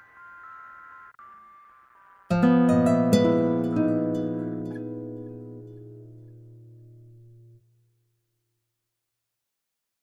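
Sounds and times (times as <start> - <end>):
faint soft music with high held notes: 0.0 - 7.3.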